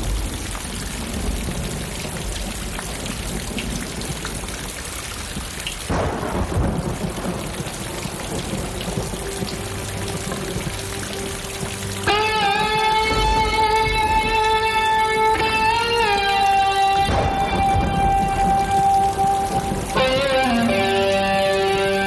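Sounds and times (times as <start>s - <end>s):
steady rain: 0.0s - 22.0s
thunderclap rumbling: 5.9s - 21.8s.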